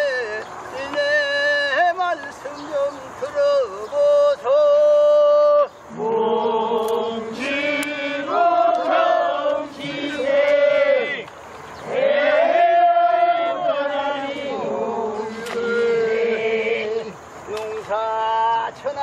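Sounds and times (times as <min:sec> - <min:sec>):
men singing in chorus: 0:05.0 - 0:18.7.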